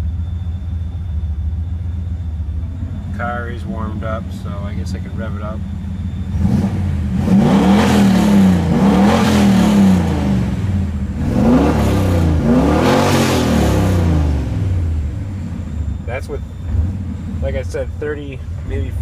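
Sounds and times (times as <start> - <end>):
turbocharged engine revving: 2.6 - 19.0.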